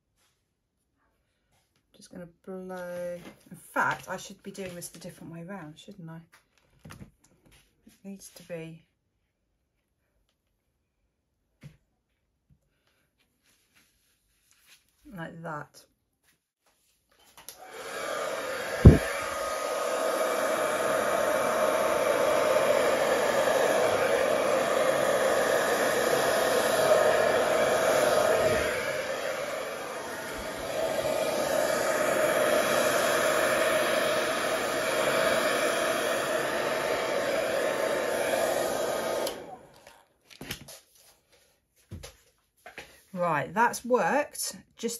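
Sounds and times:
hair dryer running: 0:17.4 - 0:40.1.

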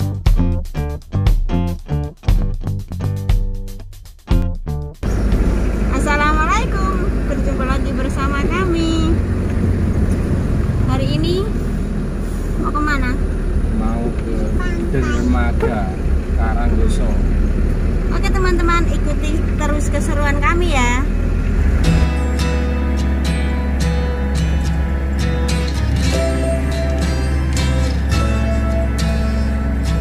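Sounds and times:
car engine and road noise: 0:00.0 - 0:30.0
people speaking: 0:05.9 - 0:09.2, 0:10.8 - 0:11.6, 0:12.6 - 0:17.3, 0:18.1 - 0:21.1.

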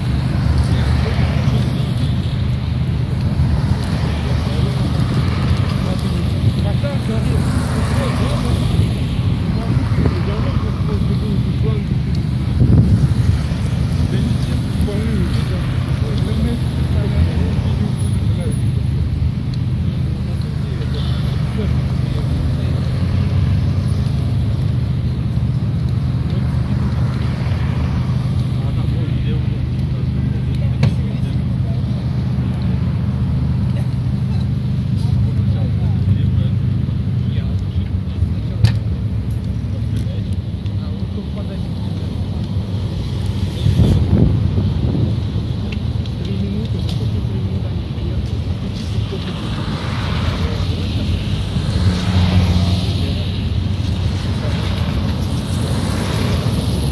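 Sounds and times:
street traffic rumble: 0:00.0 - 0:56.9
vehicle engines idling: 0:00.0 - 0:56.9
wind on the microphone: 0:08.6 - 0:16.0, 0:42.5 - 0:52.4
vehicle passing close: 0:40.9 - 0:56.9.

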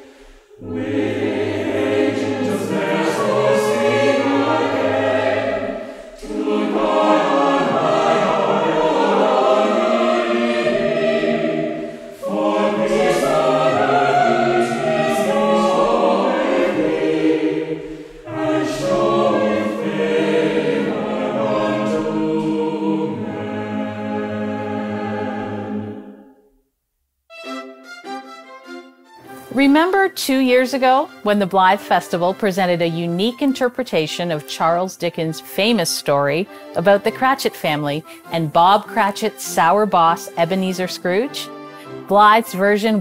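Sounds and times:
mixed choir singing in harmony: 0:00.0 - 0:26.4.

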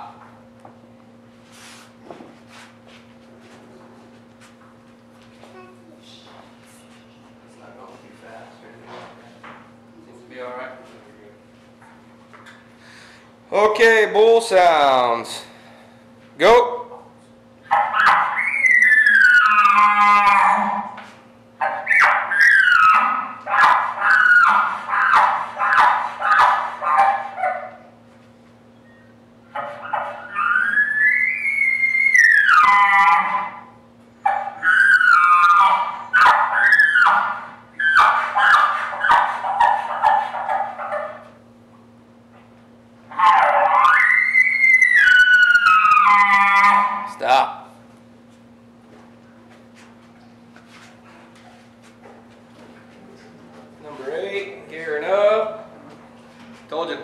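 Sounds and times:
elk bugle calls: 0:17.7 - 0:27.6, 0:29.6 - 0:33.8, 0:34.6 - 0:39.2, 0:43.1 - 0:47.4.

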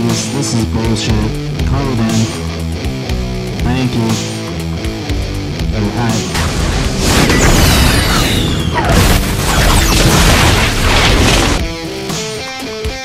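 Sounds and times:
guitar music: 0:00.0 - 0:07.6, 0:10.8 - 0:13.0
missile blast: 0:06.3 - 0:11.7.

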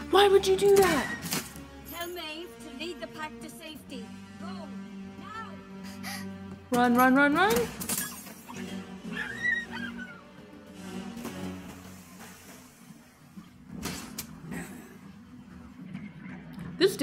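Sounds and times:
quiet film soundtrack music: 0:00.0 - 0:17.0.

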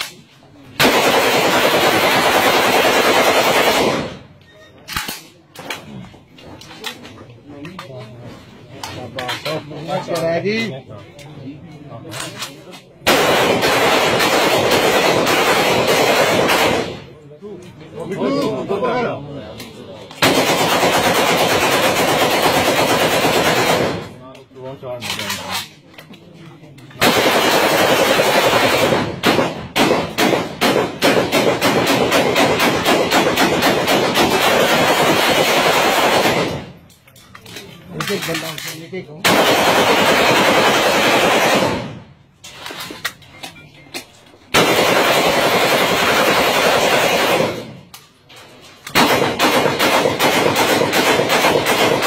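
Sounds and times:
rapid rifle gunfire: 0:00.7 - 0:04.3, 0:13.0 - 0:17.1, 0:20.2 - 0:24.2, 0:27.0 - 0:36.8, 0:39.2 - 0:42.1, 0:44.5 - 0:47.9, 0:48.9 - 0:52.0
rapid loud bangs and crackles: 0:20.2 - 0:24.2, 0:27.0 - 0:36.8, 0:39.2 - 0:42.1, 0:48.9 - 0:52.0.

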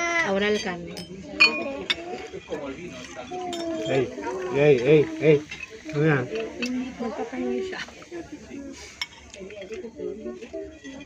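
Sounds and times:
quiet voices: 0:00.0 - 0:11.0
tableware clinking: 0:00.2 - 0:07.1.

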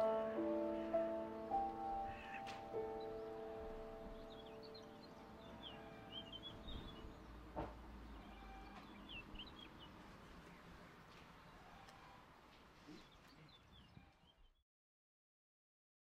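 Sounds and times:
grand piano notes: 0:00.0 - 0:07.5
faint high bird chirps: 0:02.0 - 0:07.2
soft knock: 0:07.6 - 0:07.8.

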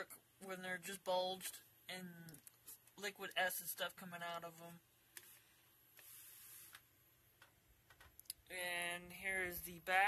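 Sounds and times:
faint hiss: 0:05.1 - 0:07.1.

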